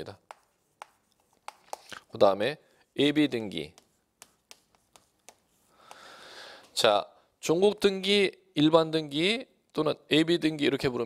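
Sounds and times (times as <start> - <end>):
chalk tapping on blackboard: 0.0 - 2.1, 2.8 - 6.1.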